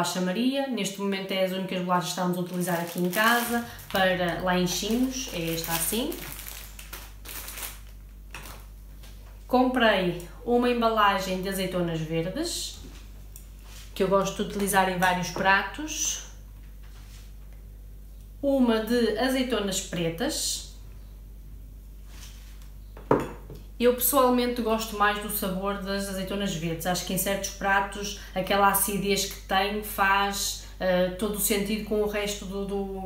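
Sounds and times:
plastic packaging crinkling: 2.4s - 9.5s
glass jar knocking on hard surface: 23.0s - 23.6s.

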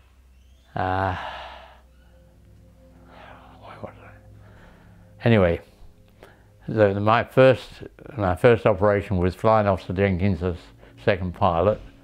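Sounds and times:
low electrical hum: 0.0s - 12.0s
man breathing softly: 1.1s - 6.6s.

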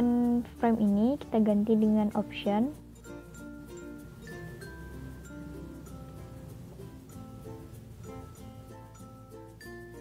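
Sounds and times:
soft melodic instrumental music: 0.0s - 10.0s.

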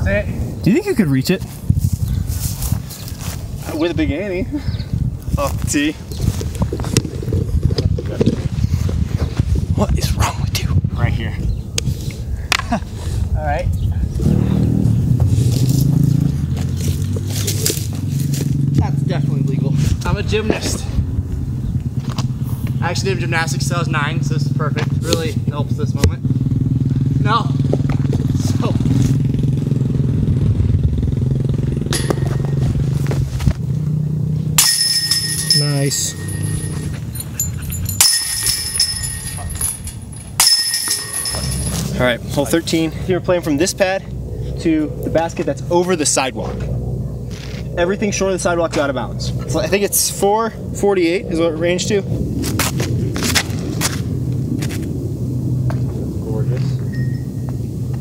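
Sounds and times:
vehicle engine running: 21.0s - 49.6s
disc striking metal chains: 31.7s - 32.9s, 34.6s - 42.0s
chains jingling: 34.6s - 42.0s.

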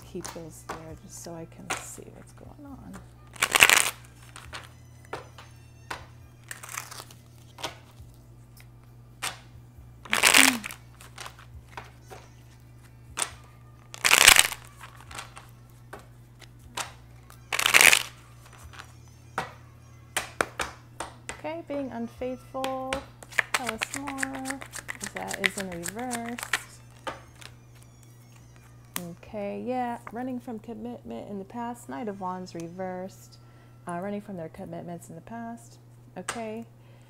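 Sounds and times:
cards riffling: 3.3s - 5.5s, 6.4s - 19.0s, 23.2s - 29.0s
soft card clicks and taps: 22.6s - 27.5s.

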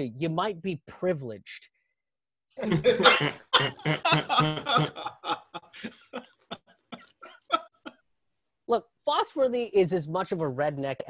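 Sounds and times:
person laughing hard: 2.6s - 8.0s.

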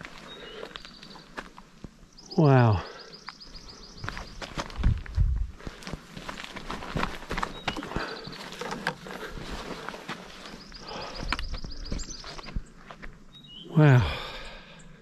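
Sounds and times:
footsteps crunching on rock and brush: 3.5s - 13.2s.

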